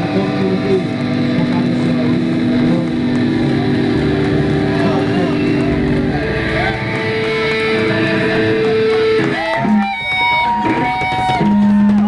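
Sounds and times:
distorted electric guitar droning: 0.0s - 12.0s.

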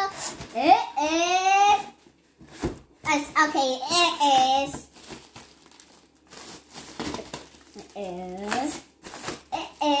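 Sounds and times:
plastic bag crinkling: 4.2s - 10.0s.

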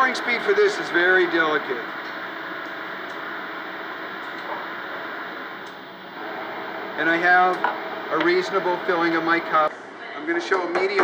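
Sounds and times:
cafe room hiss: 0.0s - 10.7s.

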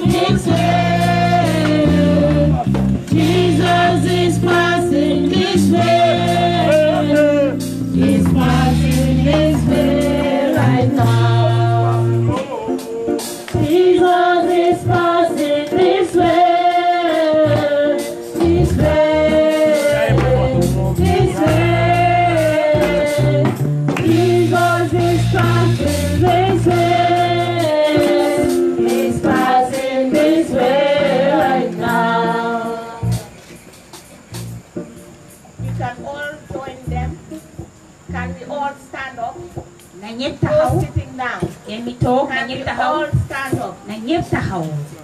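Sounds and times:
group of voices singing gospel: 0.0s - 34.6s.

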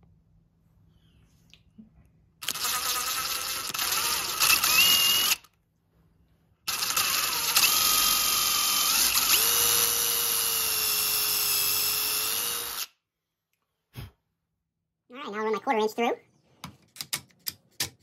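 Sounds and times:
power drill boring into wood: 2.4s - 5.5s, 6.7s - 12.9s.

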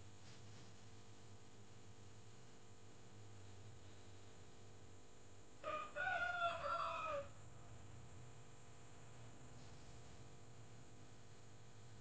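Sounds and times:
rooster crowing: 5.6s - 7.4s.

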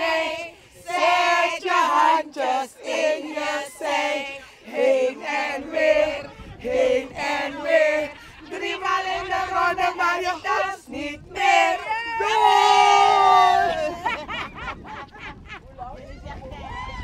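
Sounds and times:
women singing and chanting: 0.0s - 15.0s.

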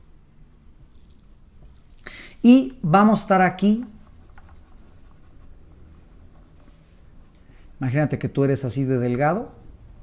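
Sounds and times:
marker scratching on whiteboard: 3.2s - 9.9s.

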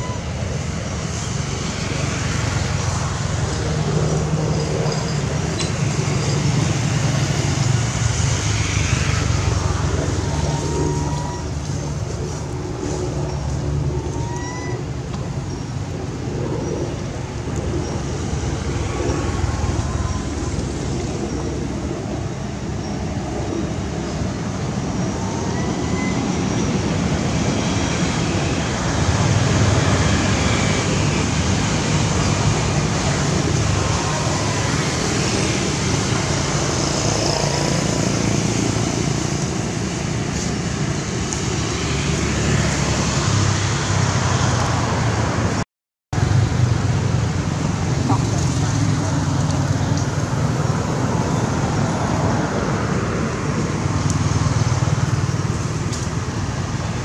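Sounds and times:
distant road traffic rumble: 0.0s - 45.6s, 46.2s - 57.0s.

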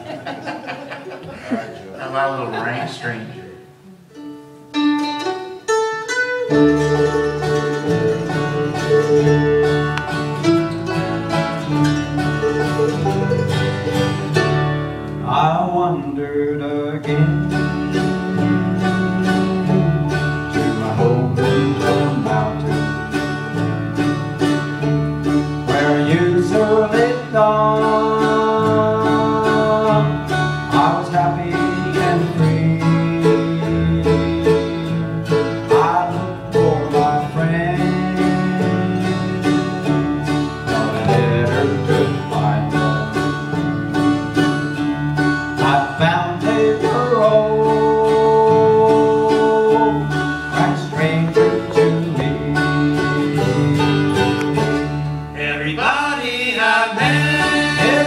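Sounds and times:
bluegrass band playing: 0.0s - 58.0s
fast banjo picking: 4.7s - 16.0s, 16.7s - 58.0s.

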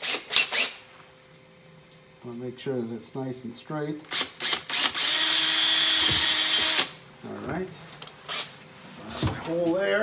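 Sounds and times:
cordless drill boring rubber: 4.1s - 6.9s.

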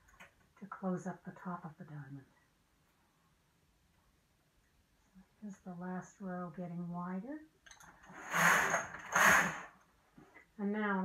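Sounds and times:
knitting machine carriage sliding: 7.8s - 9.8s.

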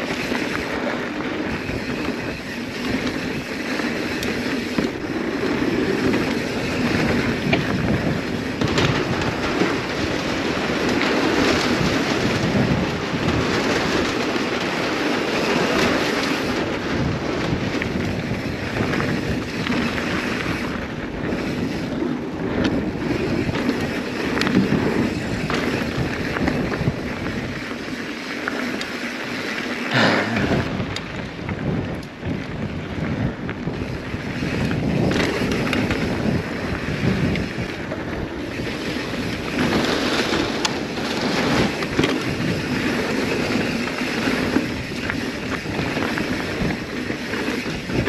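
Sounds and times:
bike tyres rolling over dirt and wood: 0.0s - 48.0s
wind rushing over microphone: 0.0s - 48.0s
bike knocking over bumps: 4.4s - 10.0s.

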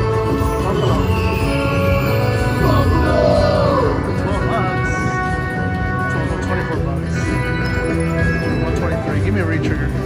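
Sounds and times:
slot machine music and tones: 0.0s - 10.0s.

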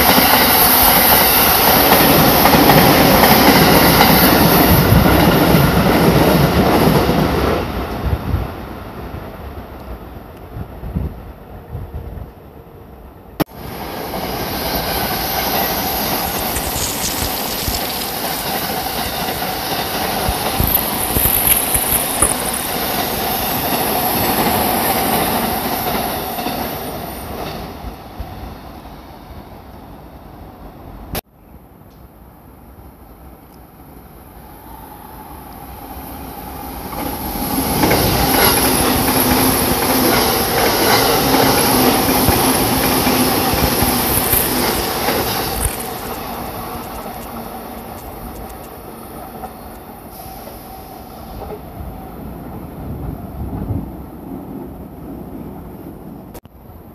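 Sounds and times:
wheels rumbling on rail: 13.5s - 28.4s, 33.2s - 56.7s
high hissing squeal: 13.6s - 27.3s, 34.2s - 48.4s, 49.6s - 51.5s.

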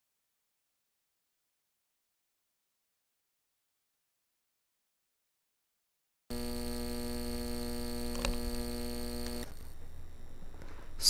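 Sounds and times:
buzzy electrical hum: 6.3s - 11.0s
faint click: 7.8s - 9.6s.

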